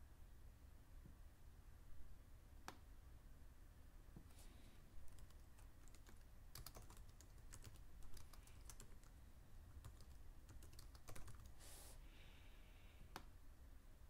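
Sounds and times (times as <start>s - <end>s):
soft hiss: 0.0s - 14.0s
typing on a computer keyboard: 5.1s - 11.6s.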